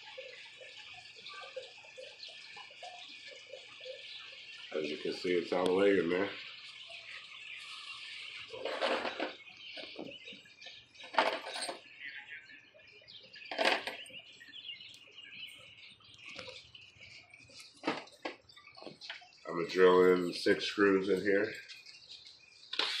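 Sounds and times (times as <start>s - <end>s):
faint bird chirping: 0.0s - 23.0s.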